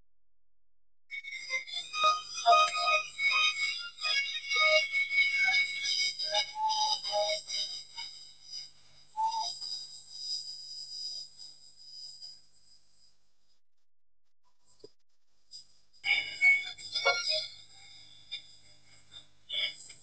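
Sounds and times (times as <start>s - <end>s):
music: 1.1s - 9.7s, 16.1s - 20.0s.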